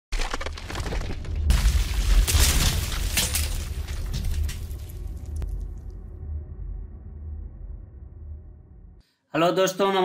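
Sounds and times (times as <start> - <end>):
concrete crash: 0.1 - 5.6
crackling debris: 0.1 - 6.0
deep rumble: 0.8 - 9.0.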